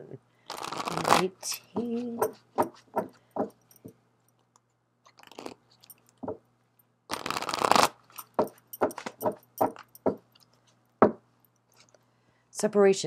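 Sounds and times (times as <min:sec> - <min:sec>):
cards being shuffled by hand: 0:00.5 - 0:03.1, 0:07.1 - 0:09.9.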